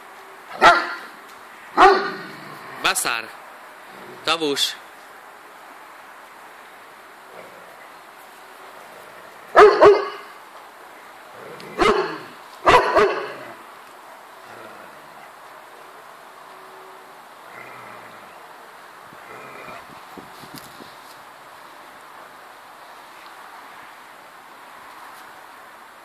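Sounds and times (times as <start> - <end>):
dog barking: 0.6 - 1.1, 1.8 - 2.2, 9.5 - 10.3, 11.8 - 13.4.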